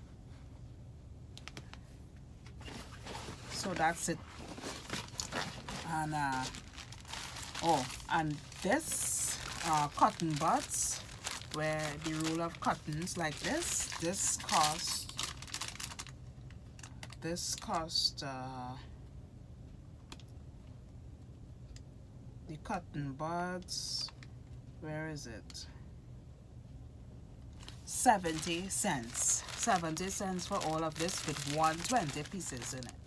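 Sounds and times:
hand rummaging in nylon bag: 2.6s - 16.1s, 27.6s - 33.0s
plastic sachet crinkling: 3.6s - 16.2s, 27.6s - 33.0s.

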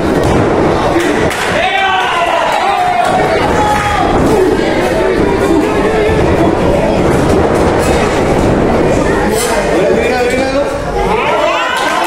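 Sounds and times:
crowd shouting: 0.0s - 9.4s, 10.8s - 12.0s.

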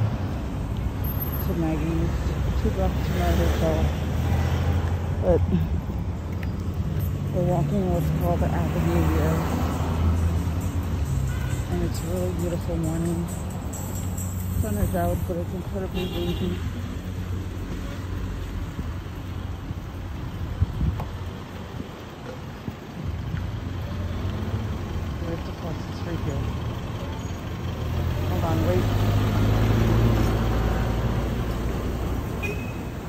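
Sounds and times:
road traffic passing: 0.0s - 33.0s
vehicle passing close: 1.4s - 15.5s, 26.0s - 32.4s.

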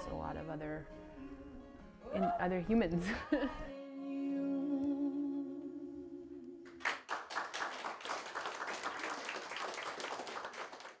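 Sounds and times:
person singing with acoustic guitar: 0.0s - 6.6s
small audience applauding: 6.7s - 11.0s.

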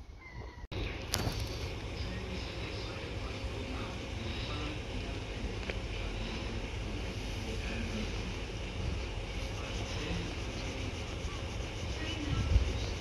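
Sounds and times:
distant diesel train engine rumble: 0.8s - 13.0s
wind noise on microphone: 12.0s - 13.0s.

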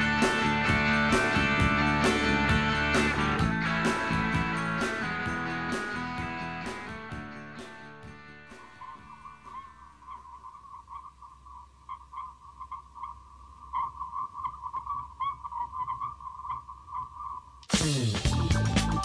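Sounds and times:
full band with drums: 0.0s - 9.2s, 17.7s - 19.0s.

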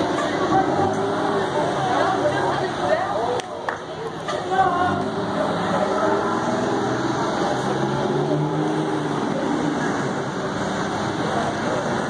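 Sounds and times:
bus diesel engine droning: 0.0s - 3.3s, 3.9s - 12.0s.

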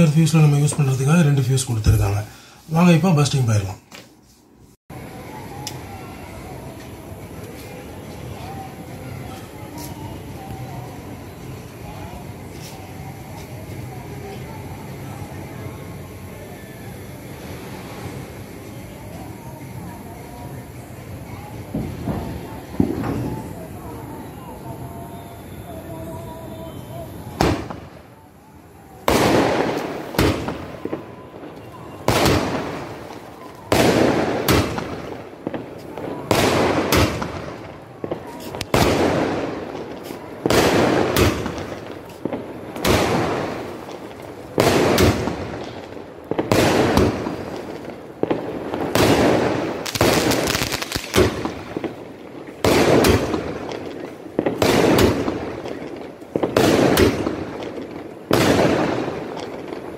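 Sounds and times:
fireworks cake firing bangs: 21.3s - 59.9s.

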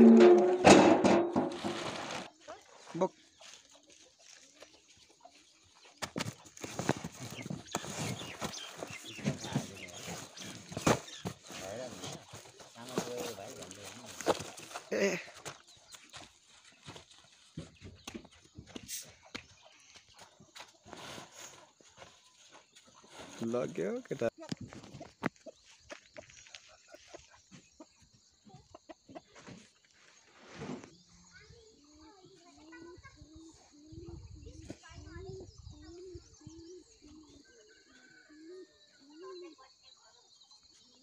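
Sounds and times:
cardboard boxes thumping and scraping: 0.0s - 2.3s, 6.0s - 15.6s.

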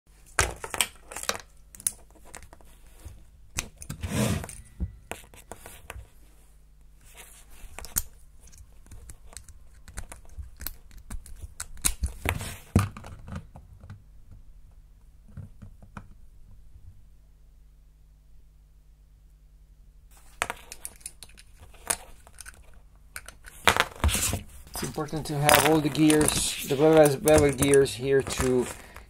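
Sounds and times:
plastic parts rustling scrapes: 20.2s - 29.0s.

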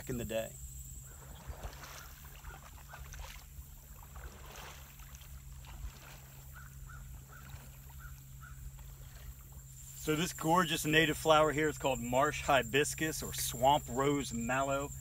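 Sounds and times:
kayak paddle splashing: 0.1s - 15.0s.

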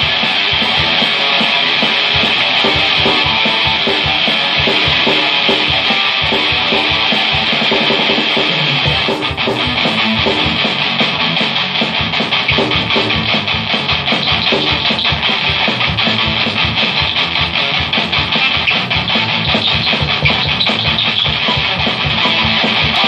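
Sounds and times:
electric guitar through amplifier: 0.0s - 23.0s.

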